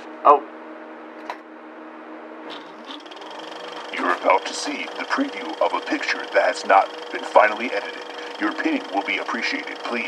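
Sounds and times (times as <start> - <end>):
film soundtrack hum and hiss: 0.0 - 10.0.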